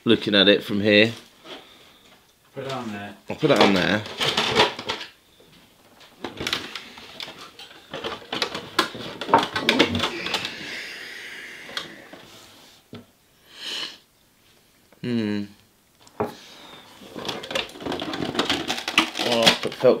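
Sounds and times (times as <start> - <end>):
plastic clicks and rattles: 17.2 - 19.9.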